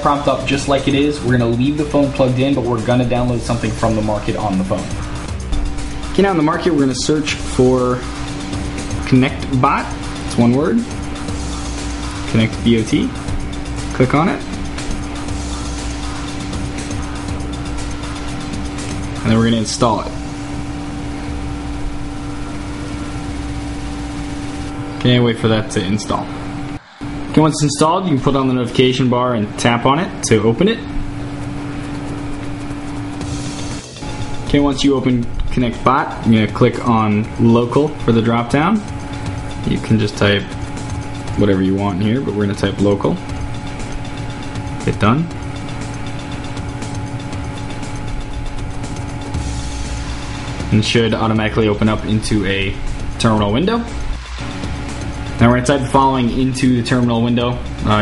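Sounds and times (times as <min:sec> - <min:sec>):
background hum and hiss: 0:00.0 - 0:58.0
droning tones: 0:00.0 - 0:58.0.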